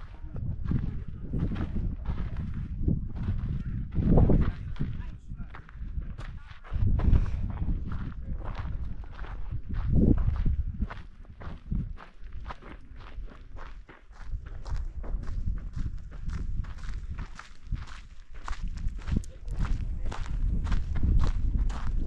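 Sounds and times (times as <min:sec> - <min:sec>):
footsteps on gravel: 0:00.0 - 0:22.0
wind rumbling on microphone: 0:00.0 - 0:22.0.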